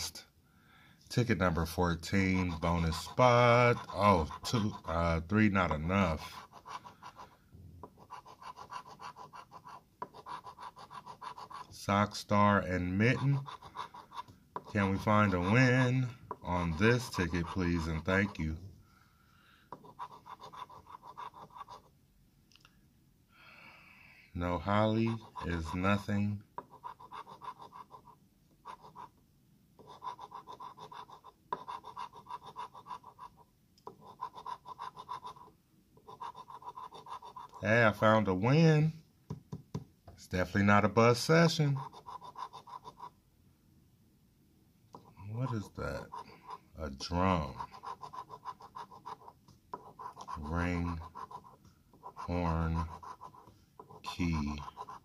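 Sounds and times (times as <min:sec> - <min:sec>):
coin scraping scratch card: 0:02.1 - 0:05.1, 0:06.0 - 0:18.5, 0:19.8 - 0:21.9, 0:24.6 - 0:29.1, 0:29.8 - 0:37.6, 0:41.5 - 0:43.1, 0:45.0 - 0:46.6, 0:47.3 - 0:55.0.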